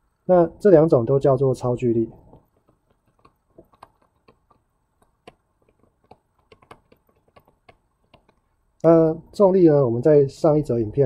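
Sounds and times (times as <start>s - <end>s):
stylus tapping on tablet screen: 2.1s - 8.6s.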